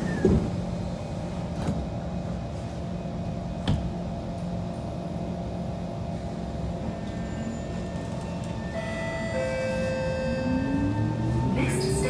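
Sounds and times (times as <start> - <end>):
train low hum: 0.0 - 12.0.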